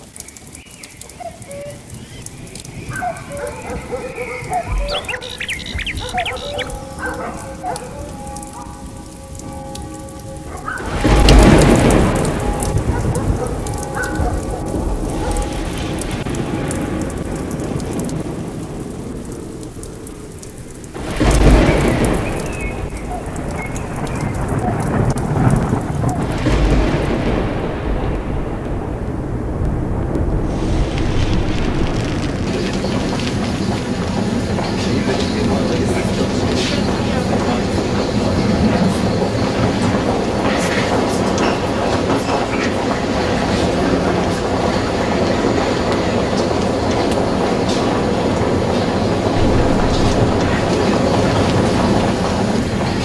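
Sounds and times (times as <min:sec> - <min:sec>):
faint steady tones: 0:01.8 - 0:21.0
loud rumbling: 0:03.2 - 0:41.0, 0:42.9 - 0:53.0
steady hissing noise: 0:26.4 - 0:53.0.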